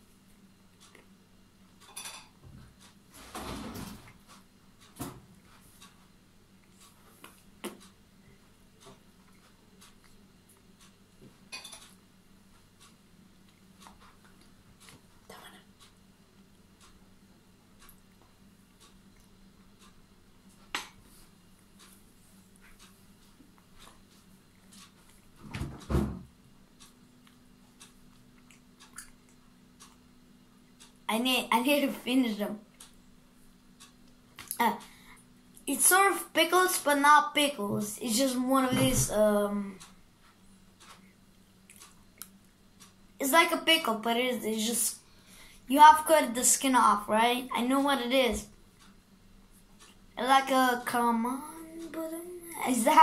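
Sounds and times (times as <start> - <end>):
child chewing candy: 0.7 - 1.2, 9.2 - 10.9, 27.1 - 30.0.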